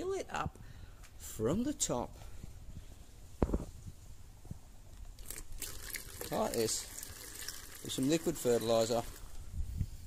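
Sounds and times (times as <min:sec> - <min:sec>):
liquid pouring hiss: 0:05.2 - 0:09.4.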